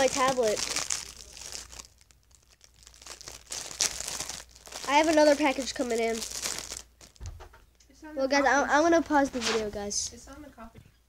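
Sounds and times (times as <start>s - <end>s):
plastic packaging crinkling: 0.0s - 7.4s.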